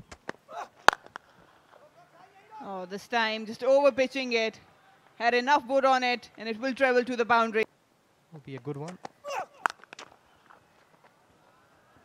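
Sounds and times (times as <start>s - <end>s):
cricket bat striking ball: 0.0s - 1.3s
stadium ambience: 0.0s - 6.4s, 8.9s - 12.0s.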